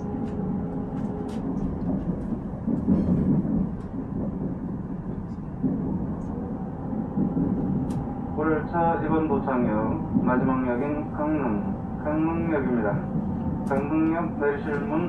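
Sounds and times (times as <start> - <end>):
constant hum: 0.0 - 15.0
train rumble on rails: 0.0 - 15.0.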